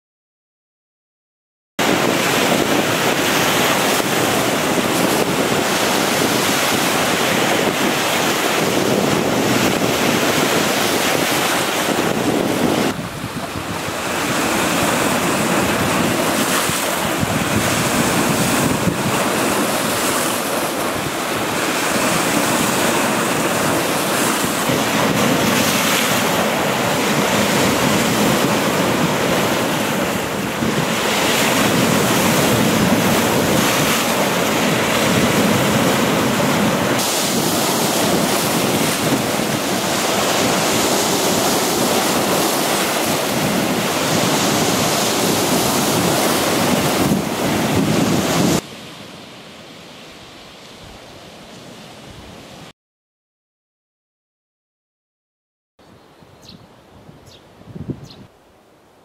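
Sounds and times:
wind buffeting microphone: 1.8s - 48.7s, 56.4s - 58.4s
waves breaking over rocks: 1.8s - 49.6s.

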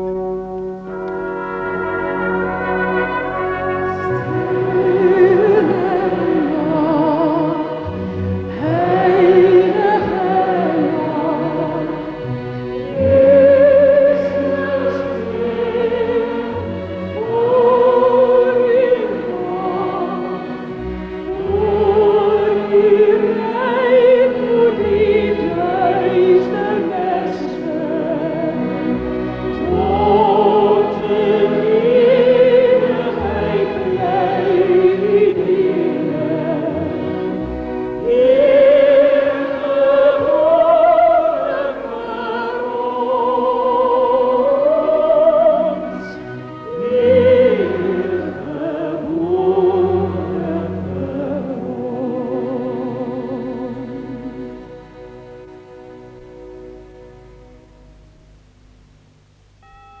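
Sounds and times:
orchestra sustained note: 0.0s - 6.0s, 59.6s - 60.0s
orchestra chords: 0.0s - 60.0s
clean high tone: 0.9s - 5.8s, 59.6s - 60.0s
choir singing: 0.9s - 55.7s.

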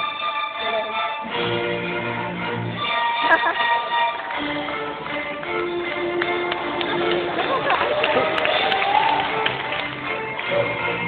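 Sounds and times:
strings and acoustic guitars playing: 0.0s - 11.0s.

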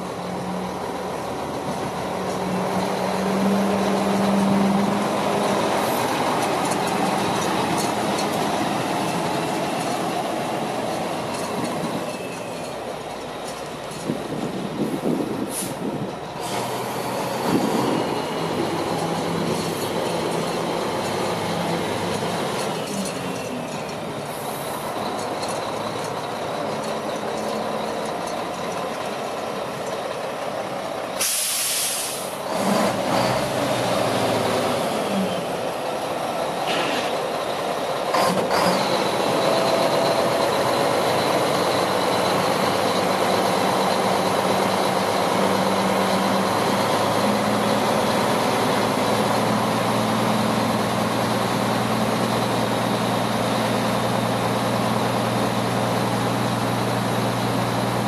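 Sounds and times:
diesel truck engine running: 0.0s - 58.0s.

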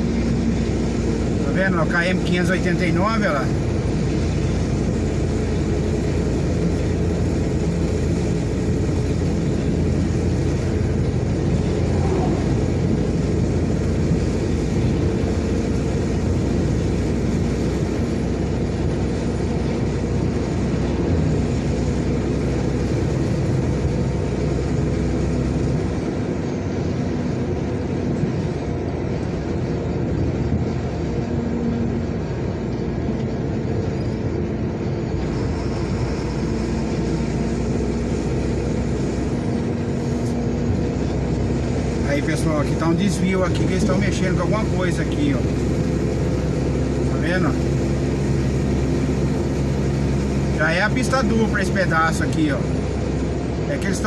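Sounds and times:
vehicle engine and tyre noise: 0.0s - 54.0s.

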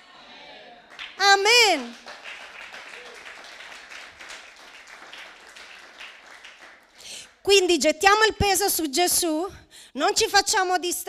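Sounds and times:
congregation applauding: 0.6s - 7.4s.

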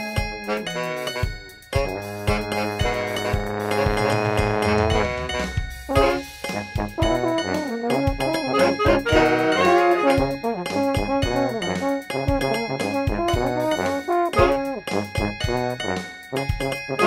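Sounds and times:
brass band music: 0.4s - 17.0s.

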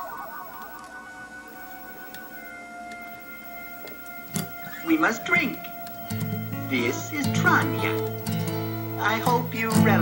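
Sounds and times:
soft electronic tones: 0.0s - 10.0s.

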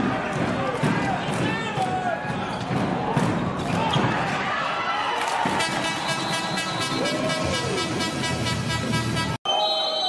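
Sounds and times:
crowd noise: 0.0s - 10.0s
long steady horn note: 5.6s - 9.4s.

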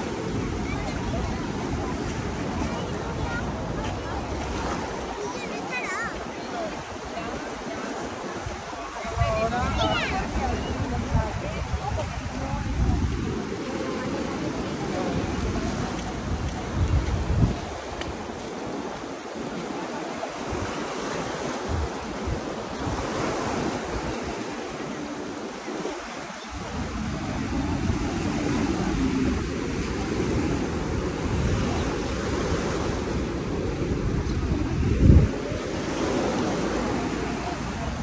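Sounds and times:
small waves breaking on shore: 0.0s - 38.0s
wind rumbling on microphone: 0.0s - 38.0s.

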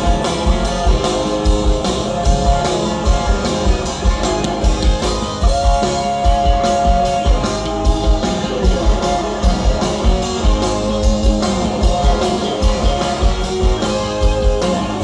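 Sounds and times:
drum kit with kick drum: 0.0s - 15.0s
electric guitar: 0.0s - 15.0s.

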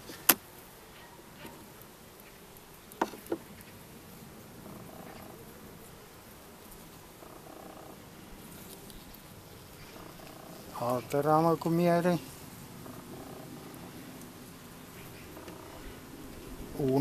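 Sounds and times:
hive tool clicks: 0.0s - 0.5s
bees humming: 0.0s - 17.0s.

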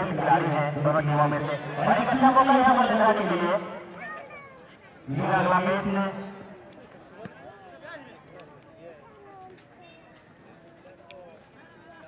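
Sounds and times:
faint crowd voices: 0.0s - 12.0s.

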